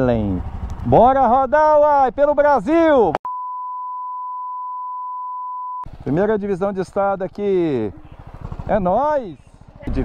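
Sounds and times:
steady electronic beep: 3.3s - 5.9s.

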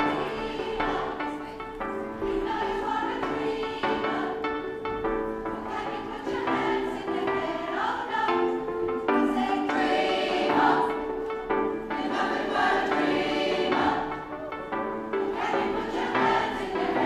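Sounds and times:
women's choir singing in harmony: 0.0s - 17.0s.

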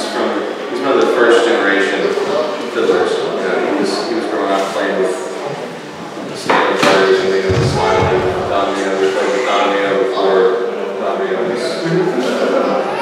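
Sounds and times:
man talking in a large hall: 0.0s - 13.0s
sudden thump: 7.3s - 9.3s.

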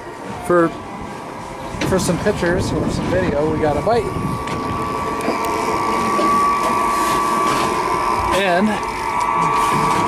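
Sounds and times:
steady high whine: 0.0s - 10.0s.

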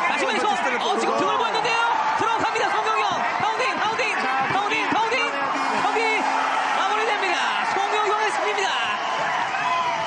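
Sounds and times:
excited voices calling out: 0.0s - 10.0s.

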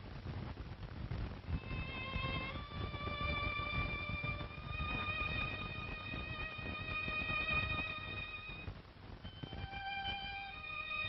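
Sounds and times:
crackling hiss of old recording: 0.0s - 11.0s
sustained violin notes: 1.6s - 11.0s.

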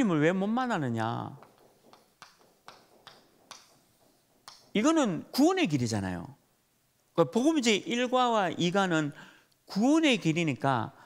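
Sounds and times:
chalk tapping and scratching on blackboard: 1.3s - 5.0s.

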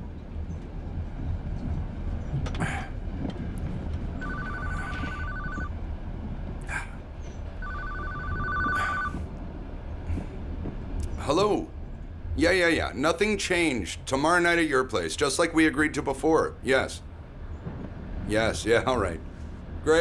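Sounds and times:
train carriage rumble: 0.0s - 20.0s
mobile phone ringing: 4.2s - 5.7s, 7.6s - 9.2s.

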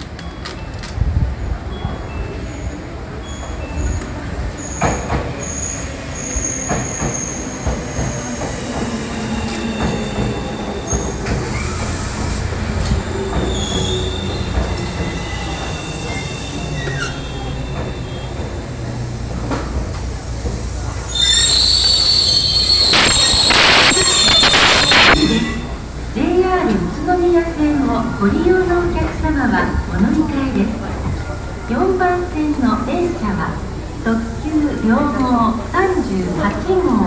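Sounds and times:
train wheels rumbling on rail: 0.0s - 37.0s
high-pitched brake squeals: 13.4s - 18.5s, 21.0s - 25.7s.

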